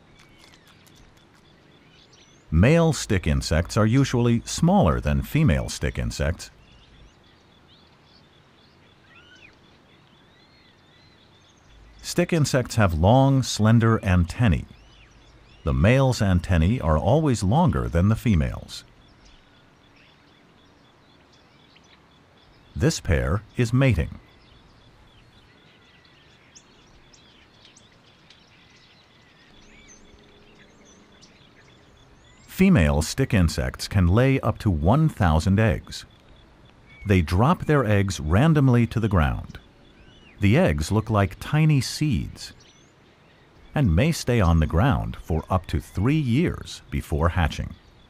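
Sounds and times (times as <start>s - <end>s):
birds chirping: 0.0s - 48.0s
low steady hiss: 0.0s - 48.0s.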